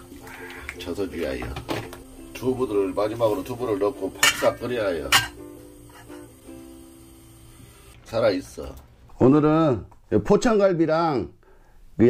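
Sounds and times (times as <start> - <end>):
plucked string instrument music: 0.0 - 7.0
metal lid clinking onto pot: 4.2 - 5.4.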